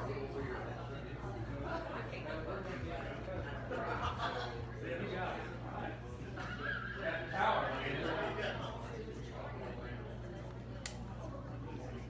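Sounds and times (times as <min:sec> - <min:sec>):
people talking in large room: 0:00.0 - 0:12.0.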